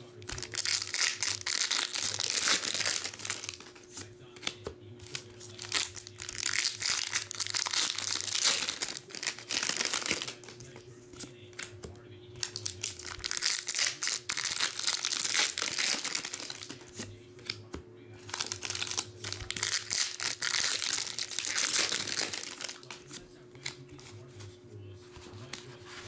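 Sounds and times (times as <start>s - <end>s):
foil wrappers crinkling: 0.0s - 10.9s, 12.4s - 17.1s, 18.2s - 24.2s
foil packs torn open by hand: 0.3s - 3.8s, 5.1s - 10.6s, 12.4s - 16.9s, 18.3s - 23.0s.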